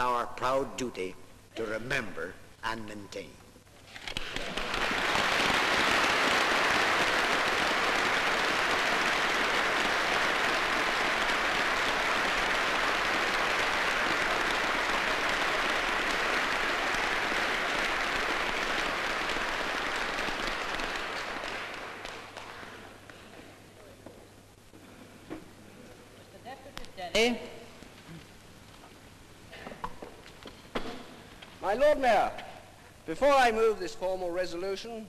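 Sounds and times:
audience applauding: 4.2 - 23.0.

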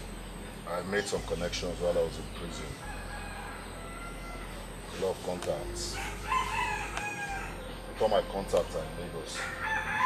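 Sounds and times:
rooster crowing: 2.7 - 4.9, 5.9 - 7.8, 9.3 - 10.0.

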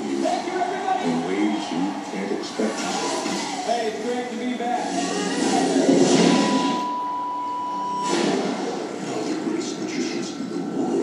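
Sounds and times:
film trailer music and effects: 1.9 - 11.0
steady high tone: 2.0 - 9.3.

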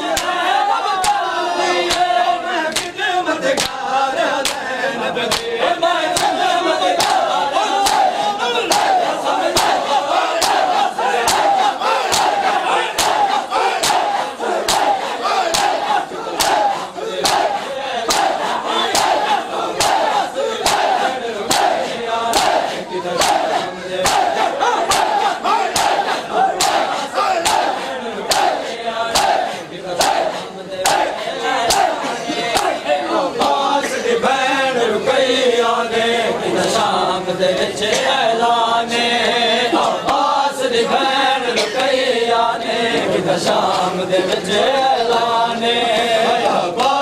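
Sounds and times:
massed chanting voices: 0.0 - 47.0
hands striking chests in unison: 0.1 - 0.4, 1.0 - 1.2, 2.7 - 3.8, 4.4 - 4.7, 5.3 - 5.5, 6.1 - 6.4, 7.0 - 32.8.

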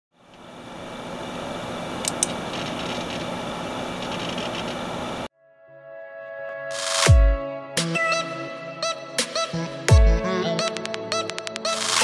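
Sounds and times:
sharp clicks: 2.0 - 2.9
electronic music: 5.5 - 12.0.

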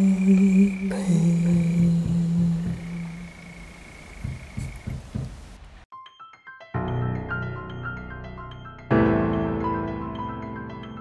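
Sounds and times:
man singing a long note: 0.0 - 3.5
faint low thumps: 1.3 - 5.8.

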